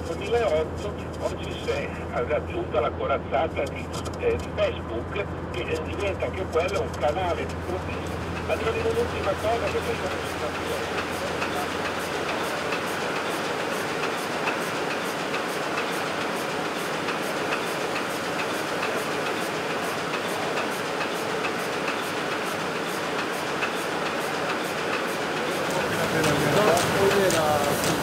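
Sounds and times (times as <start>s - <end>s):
printing press running: 5.1s - 28.0s
regular clack of sheets feeding: 25.6s - 28.0s.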